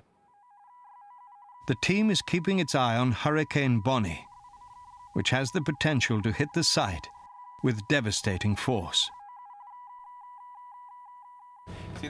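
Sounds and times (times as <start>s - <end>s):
rapid electronic beeps: 1.1s - 11.7s.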